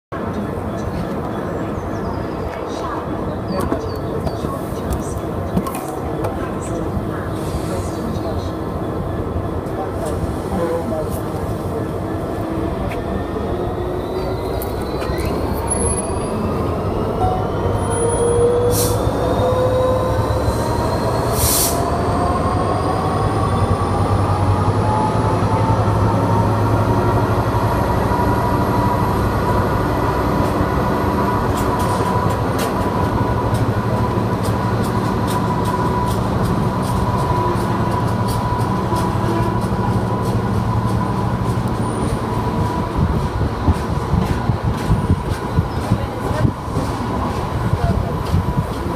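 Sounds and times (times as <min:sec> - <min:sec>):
train wheels rumbling on rail: 0:00.2 - 0:48.9.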